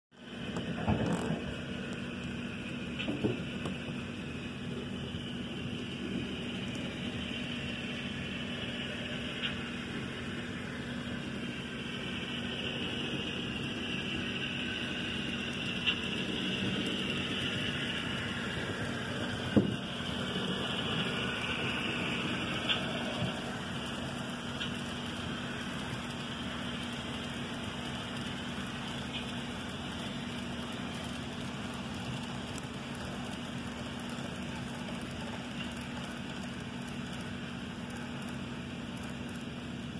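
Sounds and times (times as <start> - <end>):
model train rolling past: 0.2 - 39.9.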